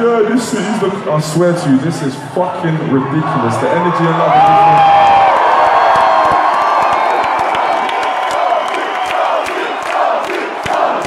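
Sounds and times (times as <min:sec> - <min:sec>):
crowd cheering and whooping: 0:03.3 - 0:11.0
hand claps: 0:05.9 - 0:11.0.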